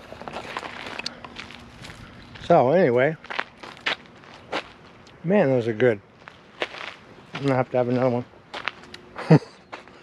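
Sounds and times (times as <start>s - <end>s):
footsteps on dry ground: 0.0s - 5.2s, 6.1s - 10.0s.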